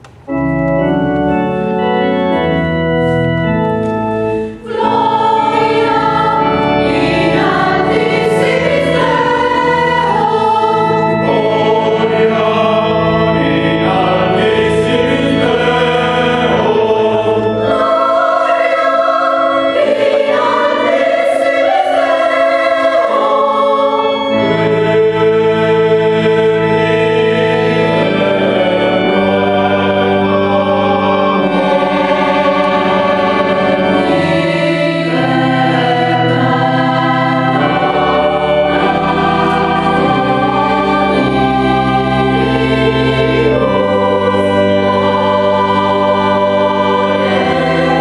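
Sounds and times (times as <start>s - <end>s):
choir singing: 0.0s - 48.0s
church organ chords: 0.0s - 48.0s.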